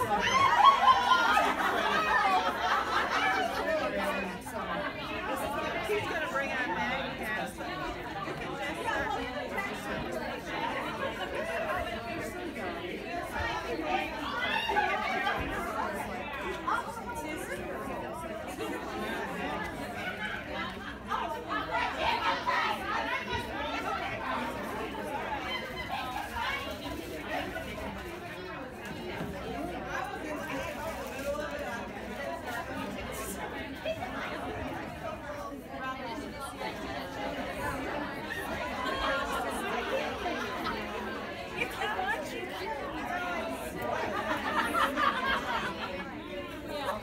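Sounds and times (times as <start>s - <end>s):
women chattering: 0.0s - 47.0s.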